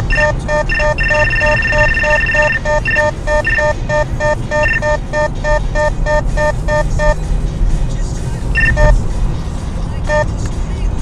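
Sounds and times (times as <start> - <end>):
radar detector beeps: 0.0 - 7.2, 8.6 - 9.0
car road noise: 0.0 - 11.0.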